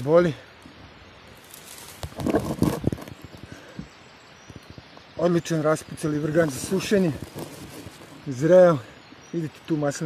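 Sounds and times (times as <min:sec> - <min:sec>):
dry leaves crackling and rustling: 0:01.2 - 0:03.5, 0:06.0 - 0:08.6.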